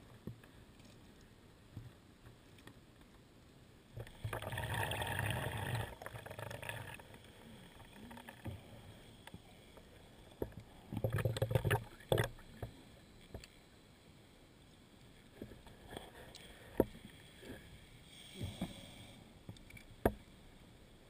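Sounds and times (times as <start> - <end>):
diver's exhaled bubbles gurgling: 4.0 - 8.5.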